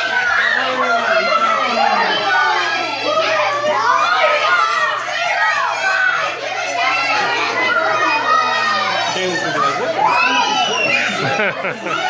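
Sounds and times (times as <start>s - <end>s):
children talking and exclaiming: 0.0s - 12.0s.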